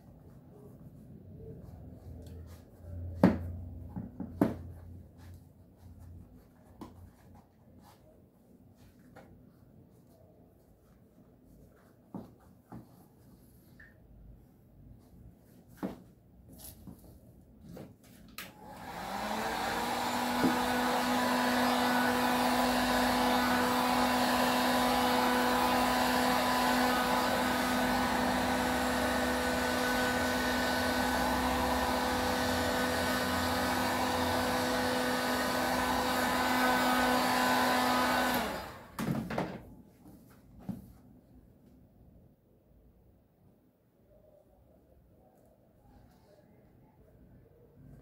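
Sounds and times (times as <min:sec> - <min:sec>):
heat gun blowing air: 0:18.6 - 0:39.0.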